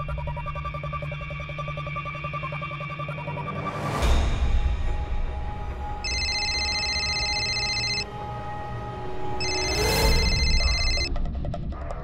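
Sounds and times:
background music: 0:00.0 - 0:12.0
mobile phone ringing: 0:06.0 - 0:08.1, 0:09.4 - 0:11.1.

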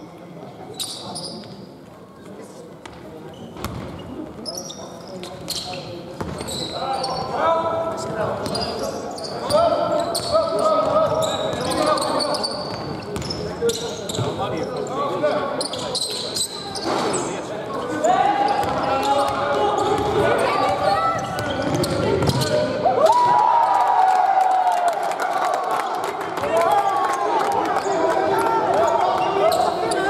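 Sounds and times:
sneakers squeaking on floor: 0:00.6 - 0:01.7, 0:02.8 - 0:07.4, 0:08.0 - 0:22.7
basketball bouncing: 0:20.0 - 0:22.5.

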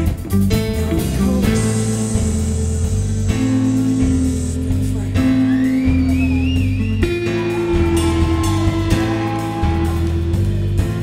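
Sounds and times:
bass guitar: 0:00.0 - 0:11.0
drums: 0:00.0 - 0:11.0.

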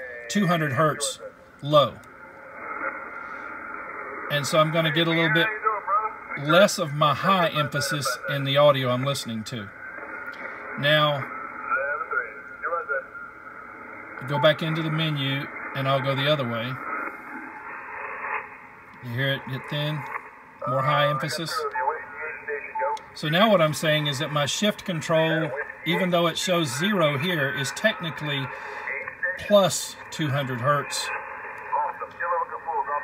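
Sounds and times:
radio receiver hiss: 0:00.0 - 0:33.0.

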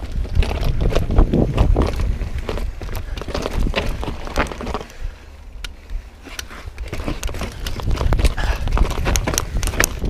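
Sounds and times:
low wind rumble: 0:00.0 - 0:10.0
mountain bike rattling on trail: 0:00.0 - 0:10.0.

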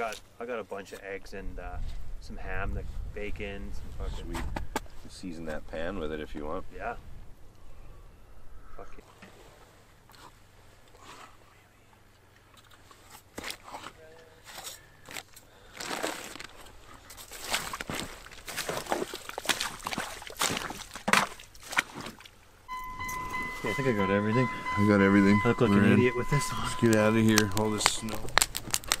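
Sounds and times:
boots crunching in wet snow: 0:14.6 - 0:22.4.

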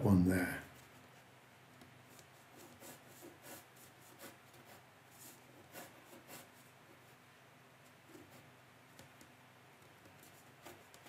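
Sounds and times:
pencil scratching on paper: 0:00.8 - 0:07.2, 0:08.0 - 0:09.2, 0:09.8 - 0:11.0.

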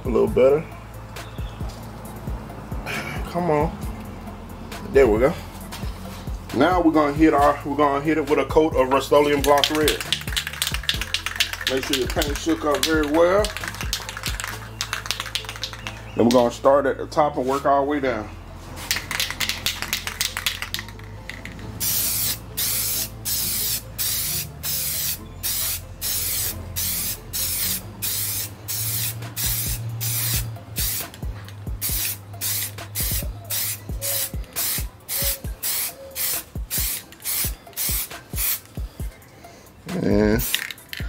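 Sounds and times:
spray paint can hissing in bursts: 0:08.9 - 0:16.4, 0:18.8 - 0:39.0, 0:40.4 - 0:41.0.

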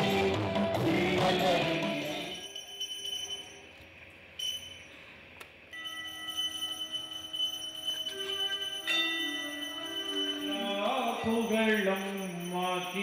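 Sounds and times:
altar bells ringing: 0:00.0 - 0:13.0.

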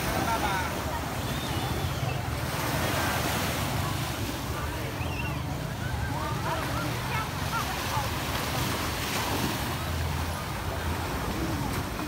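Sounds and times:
surf washing onto sand: 0:06.4 - 0:12.0.

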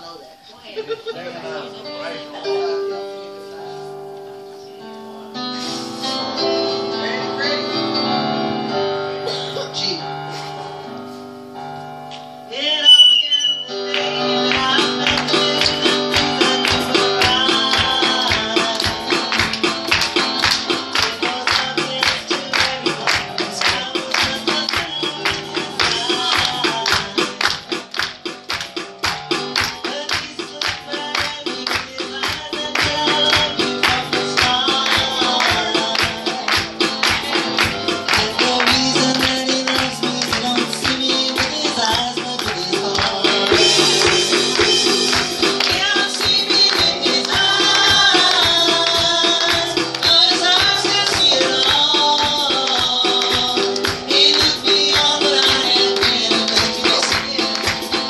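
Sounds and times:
small band playing: 0:00.0 - 0:58.0
woman singing into a microphone: 0:12.5 - 0:19.2, 0:29.9 - 0:58.0
fast beat of sharp taps: 0:14.5 - 0:58.0.

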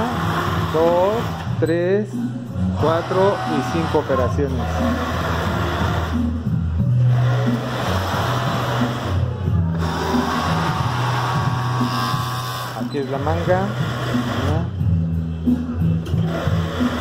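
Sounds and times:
sewing machines stitching: 0:00.0 - 0:01.5, 0:02.8 - 0:06.3, 0:07.0 - 0:14.8, 0:16.1 - 0:17.0
sewing machine motor hum: 0:00.0 - 0:01.6, 0:02.7 - 0:14.8, 0:16.2 - 0:17.0.

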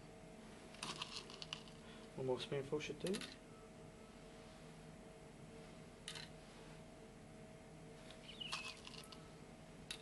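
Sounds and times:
pellets rattling onto a plastic boat: 0:00.8 - 0:01.7, 0:08.5 - 0:09.2.

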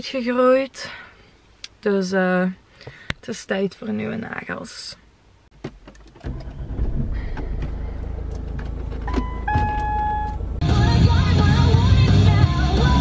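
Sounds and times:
car engine low rumble: 0:06.0 - 0:12.4
short electronic beeps: 0:09.1 - 0:10.4
music: 0:10.6 - 0:13.0.

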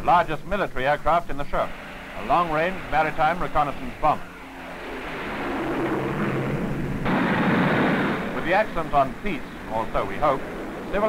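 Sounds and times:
propeller aircraft engines droning: 0:00.0 - 0:11.0
rushing engine noise: 0:01.6 - 0:11.0.

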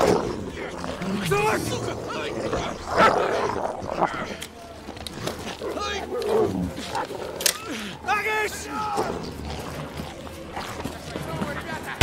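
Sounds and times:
dog snarling and growling: 0:00.0 - 0:04.4.

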